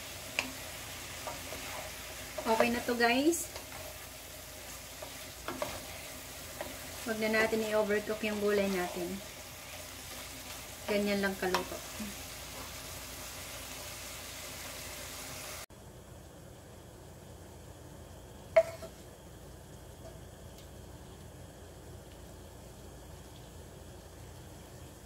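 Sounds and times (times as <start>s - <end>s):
food sizzling in a frying pan: 0.0s - 15.7s, 18.6s - 25.0s.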